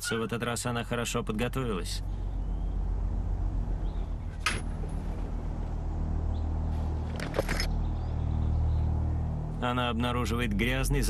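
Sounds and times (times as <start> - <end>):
steady low drone: 0.0 - 11.0.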